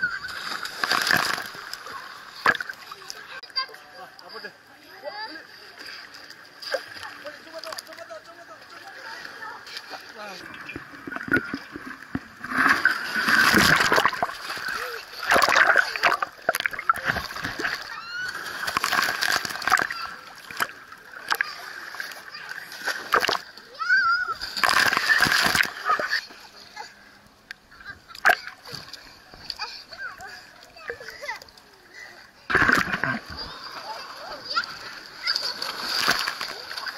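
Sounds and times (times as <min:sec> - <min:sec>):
pool water splashing: 0:00.0 - 0:36.9.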